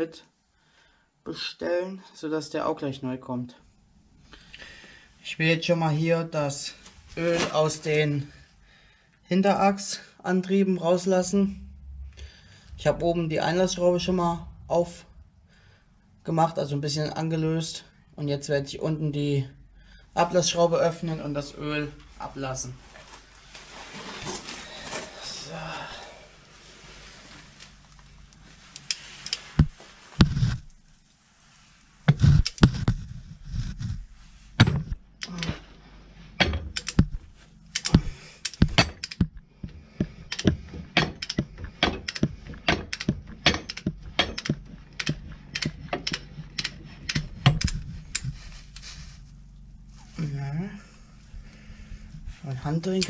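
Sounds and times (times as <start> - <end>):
heavy knocks on metal: 34.6 - 35.0, 36.4 - 37.2, 37.9 - 46.6, 47.2 - 47.7
ratchet wrench clicking: 36.4 - 37.1, 37.7 - 39.4, 40.0 - 48.3.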